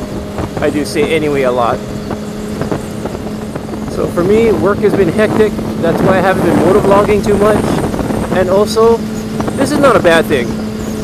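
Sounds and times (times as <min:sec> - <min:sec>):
motorcycle engine humming: 0:00.0 - 0:11.0
wind noise: 0:00.0 - 0:11.0.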